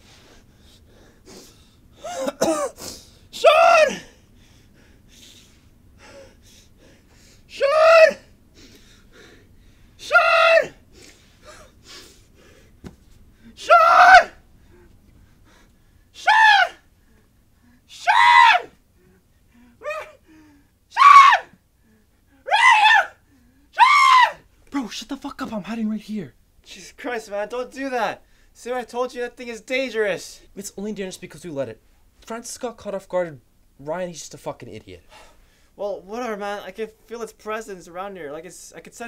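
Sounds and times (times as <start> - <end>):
person screaming: 3.4 - 4.1, 7.6 - 8.3, 10.0 - 10.8, 13.6 - 14.4, 16.2 - 16.8, 17.9 - 18.7, 19.8 - 20.2, 21.0 - 21.5, 22.4 - 23.2, 23.8 - 24.4.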